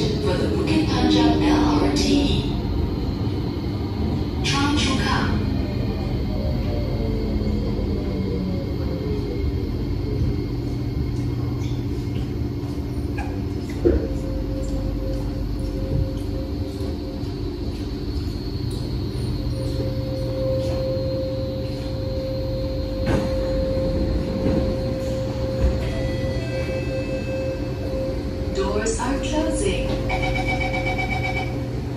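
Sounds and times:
electrical hum: 0.0 - 31.9
train motor whine: 13.8 - 31.9.

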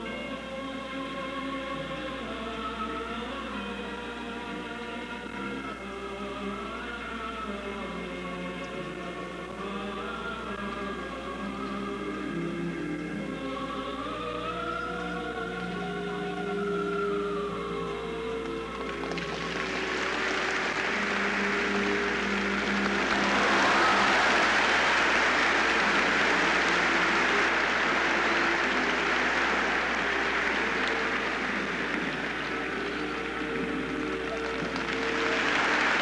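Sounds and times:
music with long held notes: 0.0 - 36.0
audience applause: 18.7 - 36.0.

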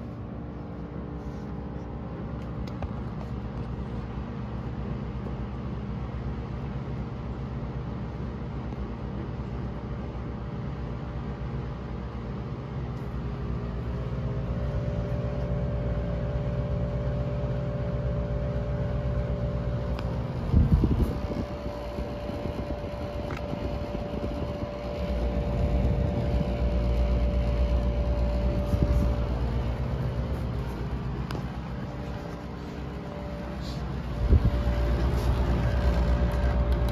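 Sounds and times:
air conditioner fan blowing: 0.0 - 36.9
steady hum: 0.0 - 36.9.

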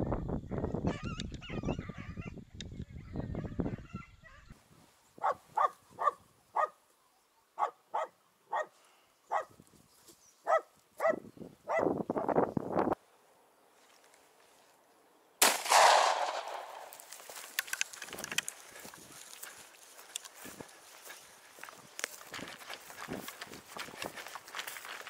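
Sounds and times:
wind rumbling on microphone: 0.0 - 4.5, 11.2 - 13.0, 21.6 - 24.7
dog barking: 5.2 - 6.8, 7.6 - 8.7, 9.3 - 9.5, 10.4 - 11.9.

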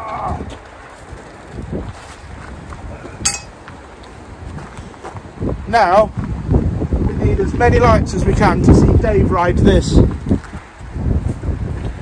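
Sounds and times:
wind buffeting microphone: 0.0 - 12.0
sharp metallic clank: 3.3 - 3.6.

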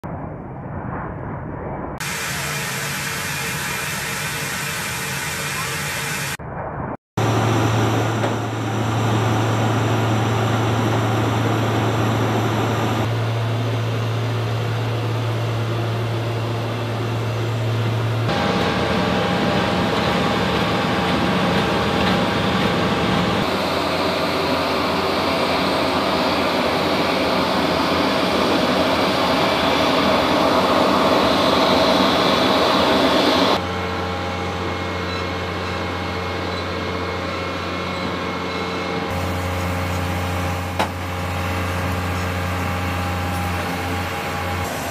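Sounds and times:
low hum: 0.0 - 44.7
aircraft machinery drone: 2.0 - 6.4, 7.2 - 44.9.

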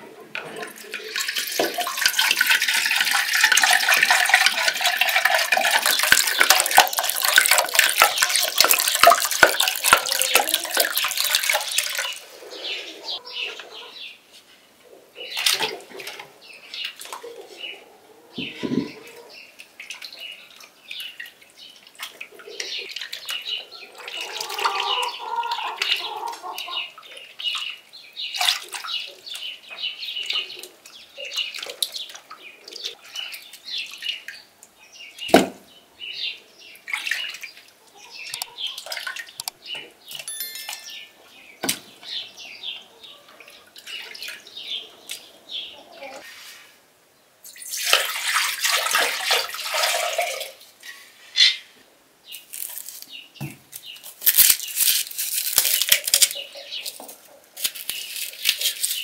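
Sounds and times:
water sloshing and splashing: 0.3 - 12.8, 18.4 - 29.5, 36.8 - 39.6, 43.0 - 45.6, 47.6 - 51.2
birds chirping: 9.4 - 14.3, 14.9 - 46.5.

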